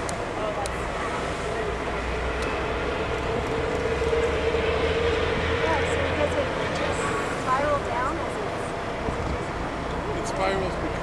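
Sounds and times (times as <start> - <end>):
steady hum: 0.0 - 9.9
low rumble and hiss at sea: 0.0 - 11.0.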